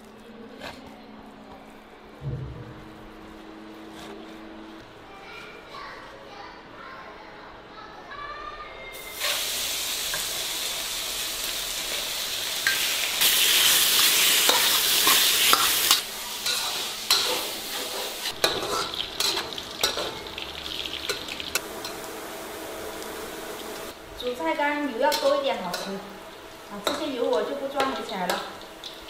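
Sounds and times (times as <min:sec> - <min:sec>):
pork sizzling in oil: 0:09.0 - 0:29.0
metal spatula scraping wok: 0:11.9 - 0:20.3.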